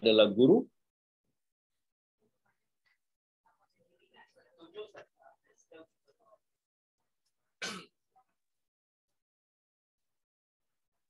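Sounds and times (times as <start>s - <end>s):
man clearing throat: 7.6s - 7.9s.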